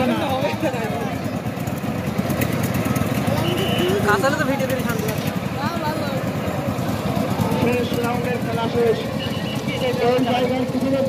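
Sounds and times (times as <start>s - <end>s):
crowd voices: 0.0s - 11.0s
diesel engine chugging: 0.0s - 11.0s.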